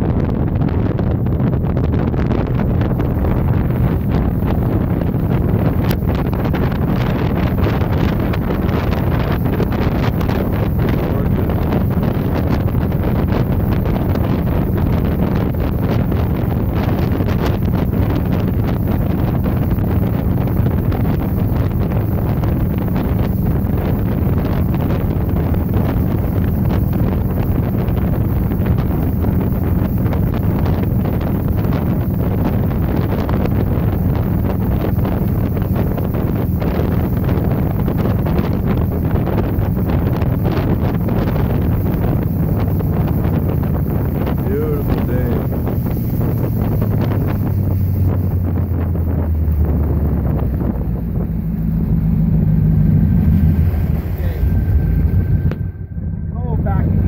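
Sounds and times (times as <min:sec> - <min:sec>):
hull spray: 0:00.0 - 0:55.5
motorboat engine humming: 0:00.0 - 0:57.0
wind on microphone: 0:00.0 - 0:57.0.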